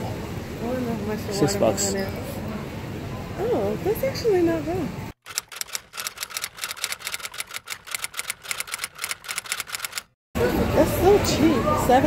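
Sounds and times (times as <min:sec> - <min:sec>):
typewriter keys clacking: 0:05.2 - 0:10.2.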